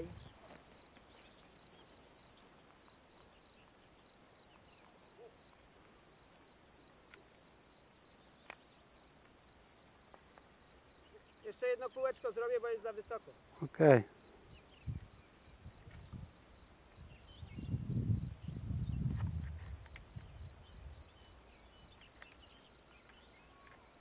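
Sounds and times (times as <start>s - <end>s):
crickets chirping: 0.0s - 24.0s.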